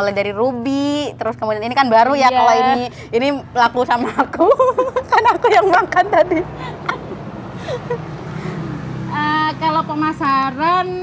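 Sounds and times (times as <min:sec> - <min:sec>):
passing motor vehicle: 0:00.0 - 0:11.0
soft laugh: 0:04.0 - 0:08.6.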